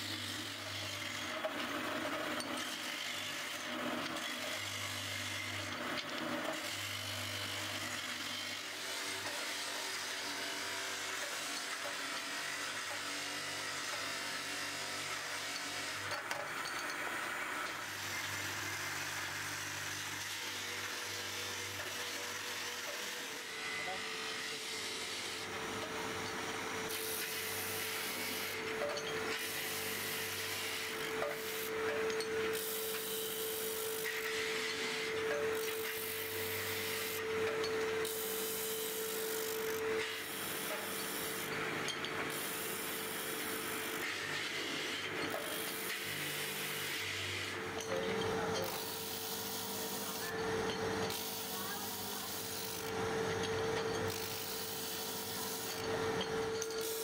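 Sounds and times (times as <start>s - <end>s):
rasping grind of metal on disc: 0.1s - 57.0s.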